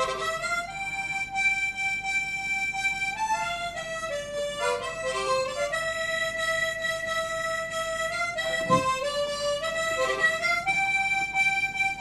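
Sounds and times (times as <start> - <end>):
harmonica solo melody: 0.0 - 12.0.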